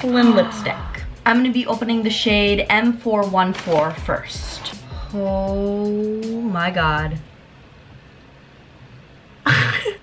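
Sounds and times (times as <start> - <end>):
woman gasping: 0.1 - 1.1.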